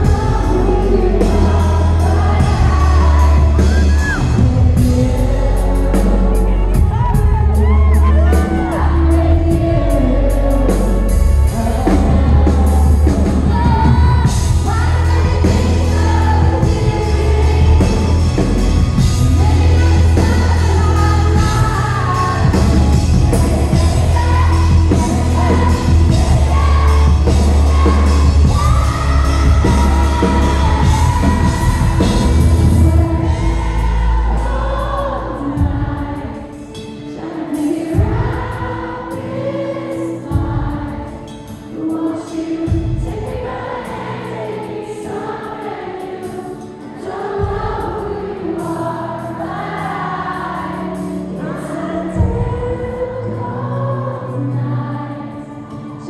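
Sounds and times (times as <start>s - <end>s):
pop-rock band playing: 0.0s - 53.6s
woman singing: 0.0s - 56.0s.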